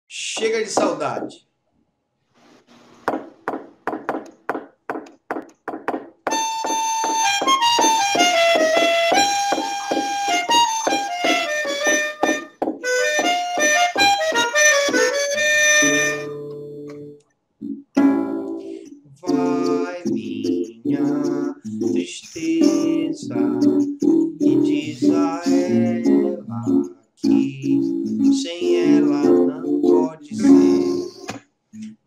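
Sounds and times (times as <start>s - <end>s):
melodica note: 6.3s - 16.8s, 30.4s - 31.2s
acoustic guitar strumming: 6.3s - 31.3s.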